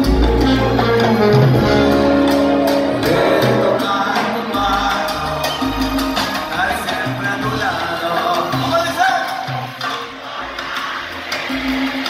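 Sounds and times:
salsa band playing: 0.0s - 12.0s
person singing: 2.9s - 12.0s.

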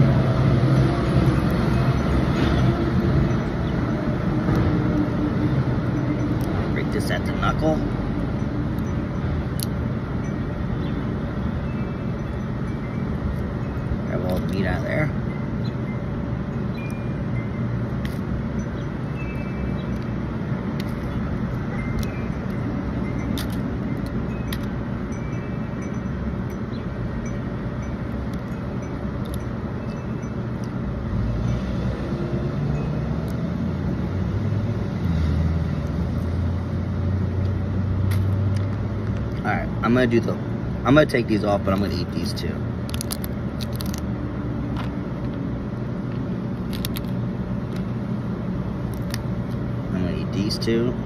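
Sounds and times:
road traffic hum: 0.0s - 51.0s
vehicle rumble: 0.0s - 51.0s
crab shell cracking by hand: 20.7s - 21.1s, 23.3s - 24.7s, 42.8s - 44.1s, 46.6s - 47.8s, 48.9s - 49.3s.

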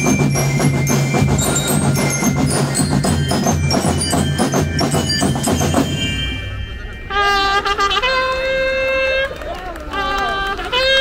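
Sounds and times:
marching band horns holding notes: 0.0s - 11.0s.

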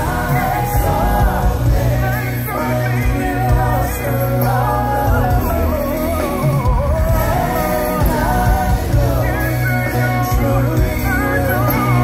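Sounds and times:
band accompaniment with bass: 0.0s - 12.0s
male vocal group singing: 0.0s - 12.0s.

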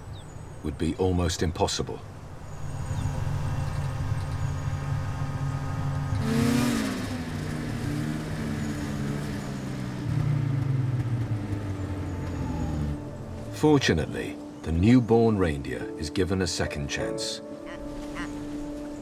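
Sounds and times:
snowmobile engine revving: 4.6s - 11.6s.

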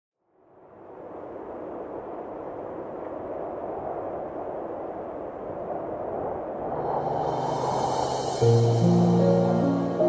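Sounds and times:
steady rushing noise swell: 0.3s - 10.0s.

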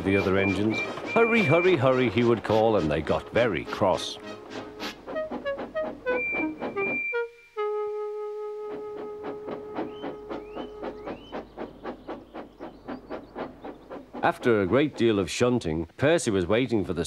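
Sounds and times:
orchestral music: 0.0s - 10.0s
steam locomotive chuffing: 0.0s - 16.5s.

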